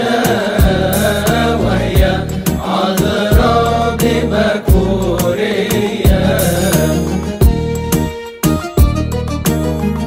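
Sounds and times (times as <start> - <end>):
solo voice singing: 0.0 - 7.3
drum strikes: 0.0 - 9.2
backing track: 0.0 - 10.0
sustained bass notes: 0.4 - 5.4, 6.1 - 10.0.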